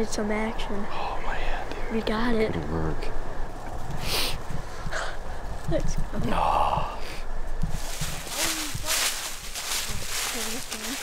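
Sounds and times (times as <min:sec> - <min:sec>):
footsteps crunching dry leaves: 0:07.6 - 0:11.0.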